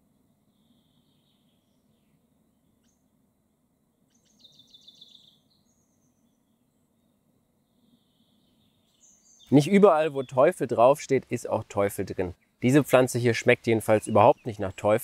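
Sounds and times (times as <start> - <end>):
distant birdsong chirps and trill: 0.0 - 15.0.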